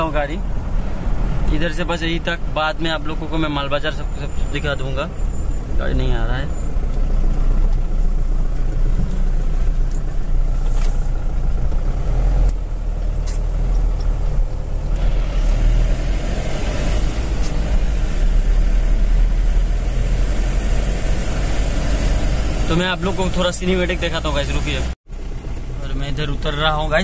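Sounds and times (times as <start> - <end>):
car engine and tyre noise: 0.0 - 27.0.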